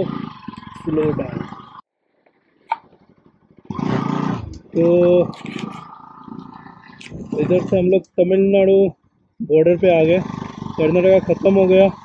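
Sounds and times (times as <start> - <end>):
motorcycle engine: 0.0 - 12.0.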